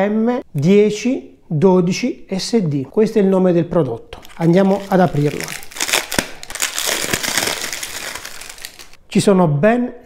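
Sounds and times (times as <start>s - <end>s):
plastic wrapping crinkling: 4.1s - 9.0s.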